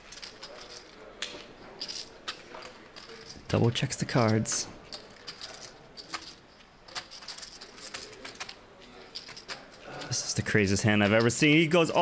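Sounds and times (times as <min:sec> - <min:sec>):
poker chips clicking: 0:00.0 - 0:11.6.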